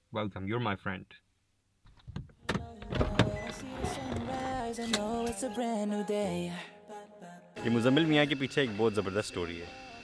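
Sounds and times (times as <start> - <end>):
car door latch clicking: 2.1 - 5.3.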